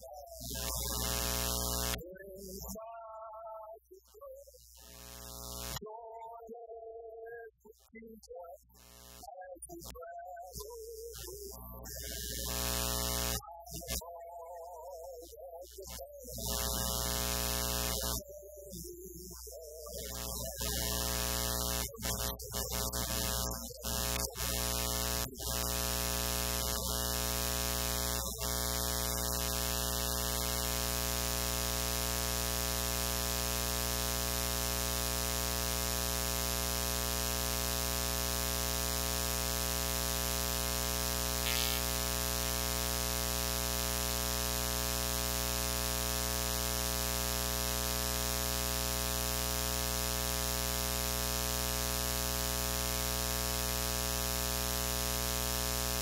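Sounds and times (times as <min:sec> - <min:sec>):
static hiss: 0:00.0 - 0:02.7, 0:04.4 - 0:05.8, 0:08.8 - 0:09.8, 0:10.5 - 0:14.0, 0:15.8 - 0:56.0.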